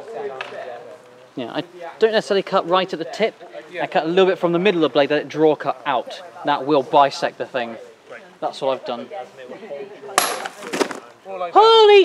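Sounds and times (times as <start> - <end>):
sword striking plastic bottle: 10.2 - 11.0.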